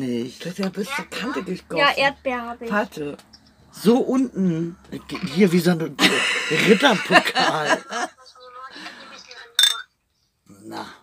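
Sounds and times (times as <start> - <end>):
wine glasses clinking: 9.6 - 9.9.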